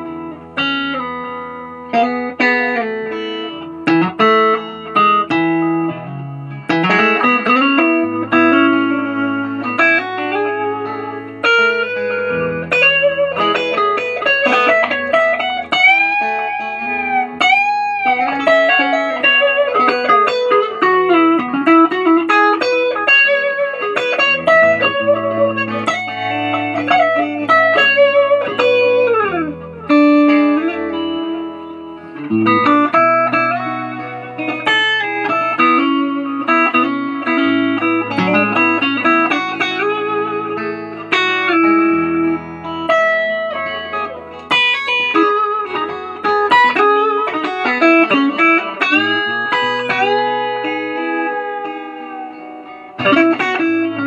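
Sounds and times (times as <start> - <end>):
electric guitar lead playing: 0.0 - 54.0.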